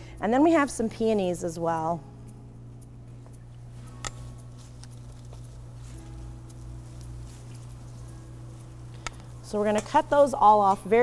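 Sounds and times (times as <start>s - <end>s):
steady low hum: 0.0s - 11.0s
faint ticks: 2.3s - 11.0s
handling flower stems and leaves: 3.6s - 10.8s.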